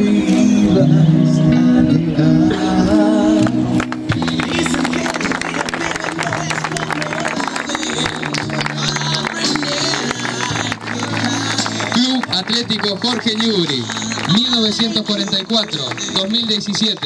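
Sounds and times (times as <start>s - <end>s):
background music with held notes: 0.0s - 17.0s
small group applauding: 3.7s - 17.0s.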